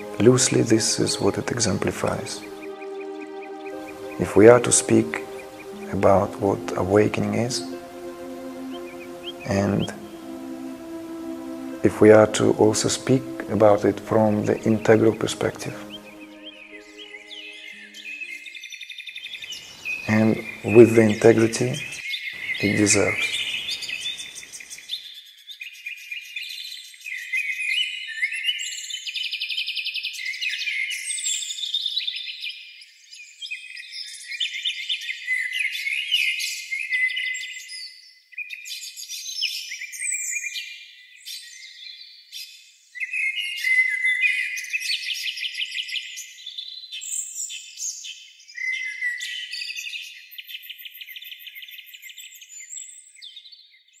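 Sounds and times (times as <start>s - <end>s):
birds chirping and trilling: 0.0s - 11.8s, 14.3s - 24.8s.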